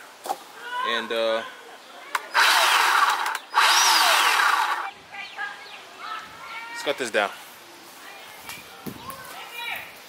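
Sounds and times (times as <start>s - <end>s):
electric chainsaw spinning up: 2.2s - 4.9s.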